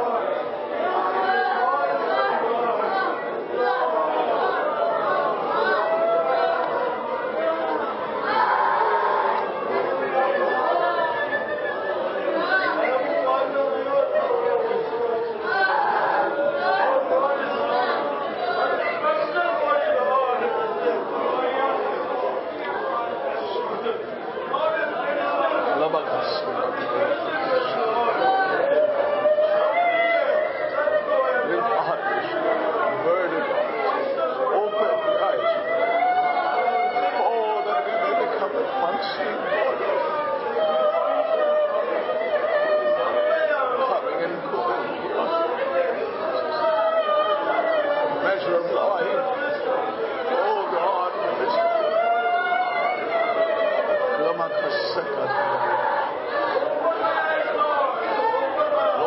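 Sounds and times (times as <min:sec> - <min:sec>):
several people talking: 0:00.0 - 0:59.0.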